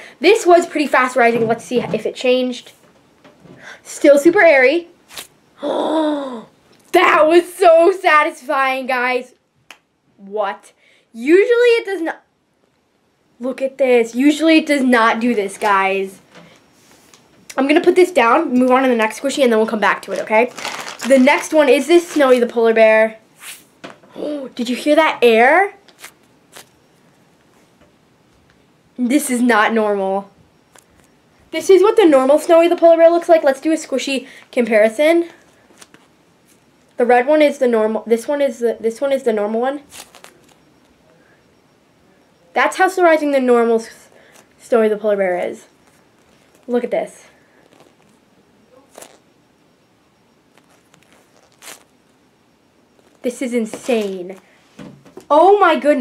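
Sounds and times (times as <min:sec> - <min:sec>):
soft rustle: 0:16.4 - 0:17.3, 0:25.8 - 0:27.8, 0:39.8 - 0:40.9, 0:45.7 - 0:49.4, 0:50.2 - 0:54.8.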